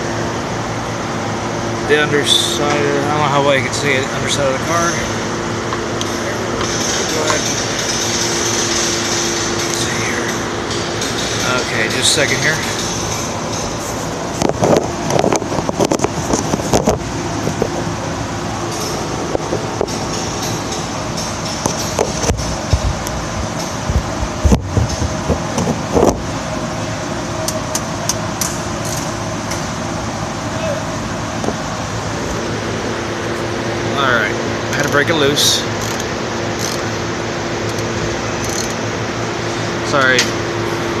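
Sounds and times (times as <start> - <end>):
shop ambience hum: 0.0 - 41.0
ratchet clicks and knocks: 6.6 - 13.8, 27.5 - 29.1, 35.8 - 36.9, 37.6 - 38.8.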